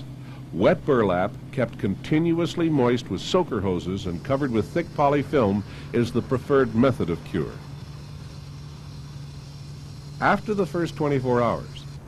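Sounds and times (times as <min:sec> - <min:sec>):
constant low hum: 0:00.0 - 0:12.0.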